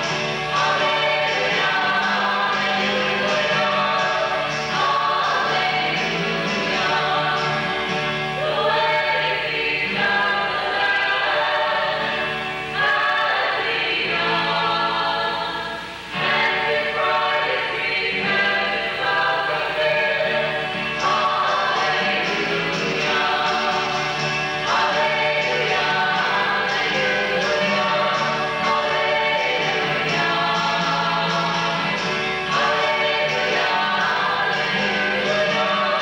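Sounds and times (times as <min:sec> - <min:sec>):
choir singing a hymn: 0:00.0 - 0:36.0.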